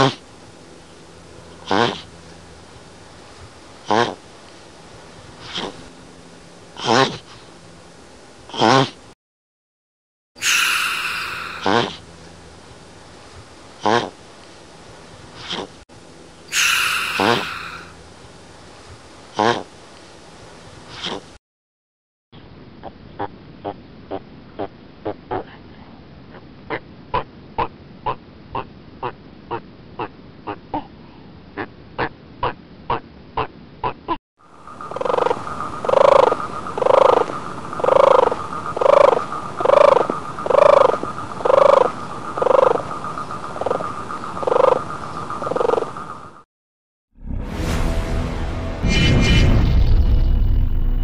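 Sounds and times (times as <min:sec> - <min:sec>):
steady high-pitched tone: 0:10.4 - 0:11.8, 0:47.2 - 0:51.0
rhythmic animal calls: 0:10.4 - 0:12.0, 0:16.5 - 0:17.9, 0:34.8 - 0:46.0
sharp clicking animal calls: 0:16.5 - 0:17.8.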